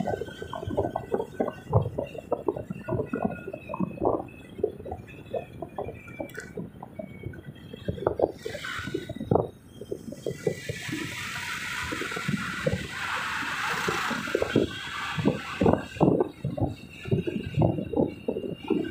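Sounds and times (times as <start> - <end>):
road noise inside moving car: 0.0 - 18.9
passing traffic hiss: 10.2 - 16.0.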